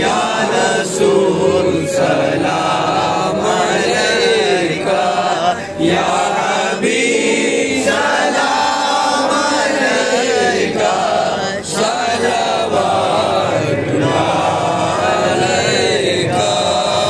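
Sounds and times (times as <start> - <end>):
men singing in unison: 0.0 - 17.0.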